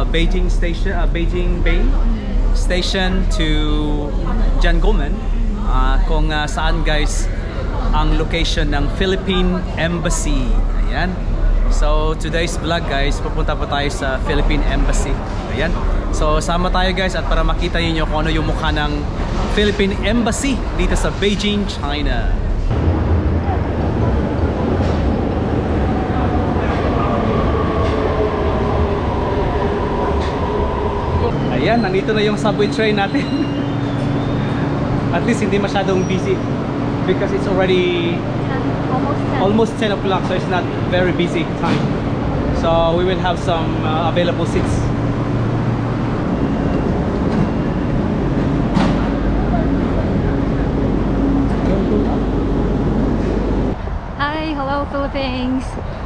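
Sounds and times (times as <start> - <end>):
subway train rumble: 0.0 - 56.0
train whining tones: 0.0 - 56.0.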